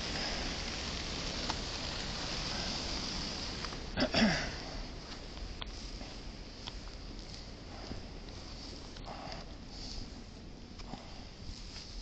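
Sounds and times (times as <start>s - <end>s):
traffic hiss on slushy road: 0.0s - 12.0s.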